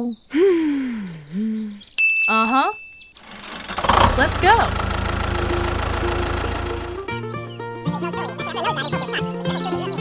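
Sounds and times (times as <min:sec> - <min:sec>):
small engine throbbing: 0:03.2 - 0:07.2.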